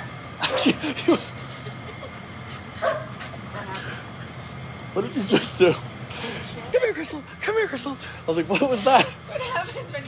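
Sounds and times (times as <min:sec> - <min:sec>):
dog barking: 0:02.8 - 0:03.1.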